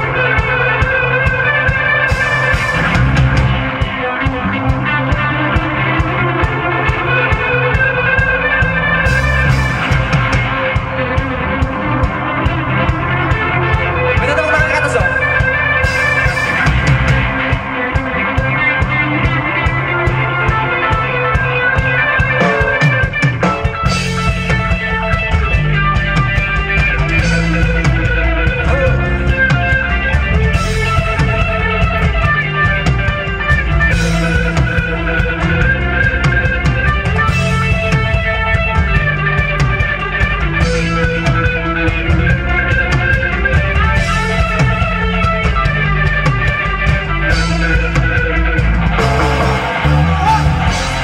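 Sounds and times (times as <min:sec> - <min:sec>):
live rock band playing: 0:00.0 - 0:51.0.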